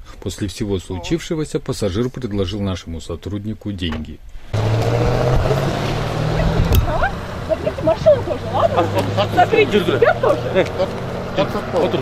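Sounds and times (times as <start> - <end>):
car engine running: 4.6 - 12.0.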